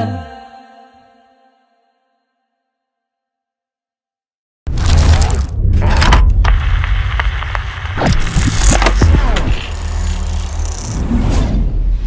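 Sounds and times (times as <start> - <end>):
deep bass rumble: 4.7 - 11.8.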